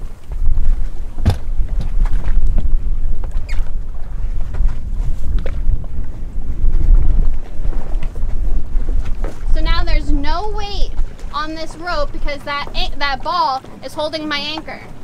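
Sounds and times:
waves washing against hull: 0.0 - 15.0
wind buffeting microphone: 0.0 - 15.0
sharp knocks: 1.2 - 1.5.

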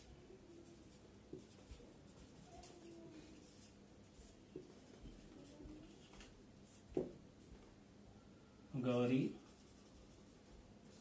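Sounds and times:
marker writing on whiteboard: 0.7 - 7.2.

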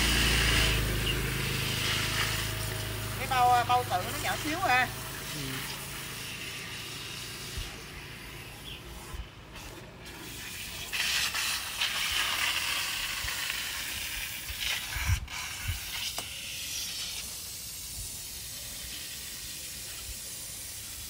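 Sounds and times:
water running from garden hose: 0.0 - 21.0.

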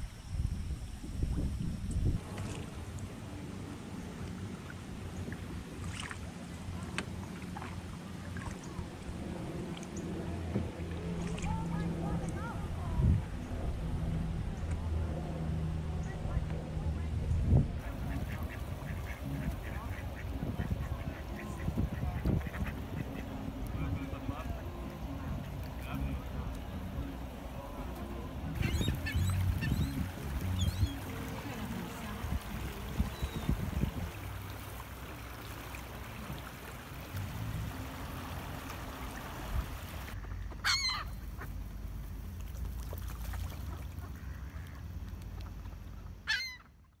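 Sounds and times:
steady low rumble: 0.0 - 46.2
ducks quacking: 17.8 - 34.1, 37.7 - 41.6, 43.3 - 46.8
waterbird call: 17.8 - 41.8, 42.5 - 47.0.

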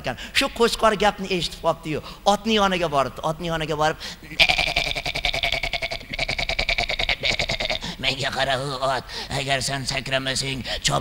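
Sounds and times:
man imitating sheep bleat: 4.4 - 8.4.

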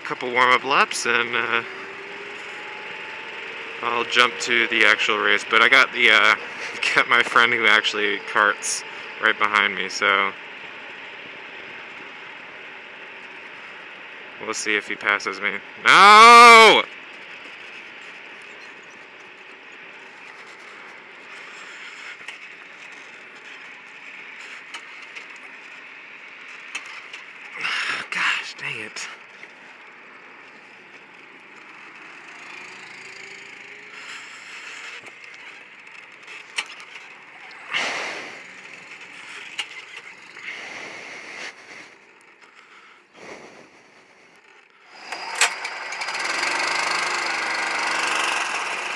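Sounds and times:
go-kart engine running: 0.0 - 48.9
wind and road noise hiss: 19.0 - 44.5.

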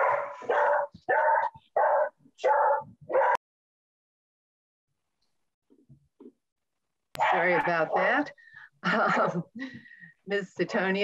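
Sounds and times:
dog barking: 0.0 - 3.4, 7.2 - 8.2.

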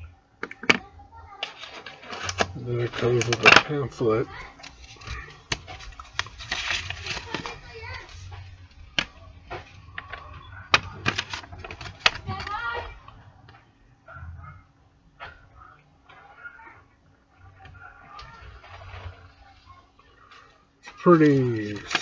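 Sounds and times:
paper crinkling and rustling: 1.4 - 13.6, 16.0 - 22.0.

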